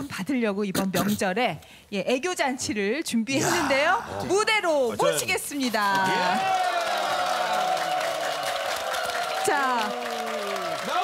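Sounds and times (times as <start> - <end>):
audience clapping: 5.9 - 11.0.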